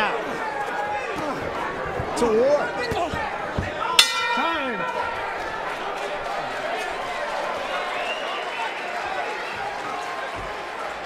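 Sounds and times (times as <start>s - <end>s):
crowd shouting: 0.0s - 11.0s
boxing ring bell: 4.0s - 5.3s.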